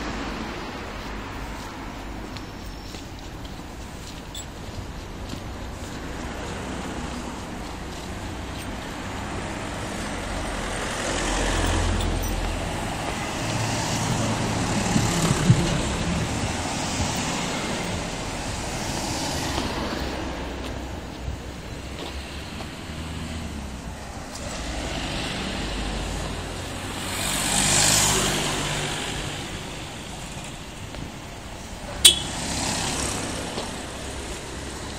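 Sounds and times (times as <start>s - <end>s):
passing cars: 0.0s - 34.9s
vehicle engine rumble: 0.0s - 34.9s.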